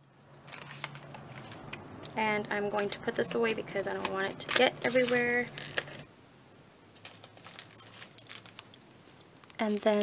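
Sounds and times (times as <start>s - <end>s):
plastic packaging crinkling: 0.2s - 6.1s, 6.9s - 10.0s.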